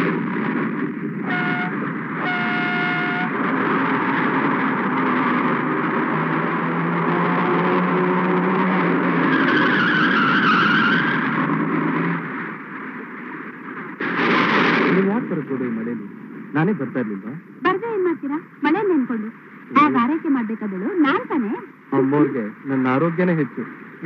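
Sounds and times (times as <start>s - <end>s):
truck engine low tone: 0.0s - 14.0s
dense rumbling noise: 0.0s - 24.0s
truck horn blasts: 1.2s - 3.4s
wavering squeal: 9.3s - 11.3s.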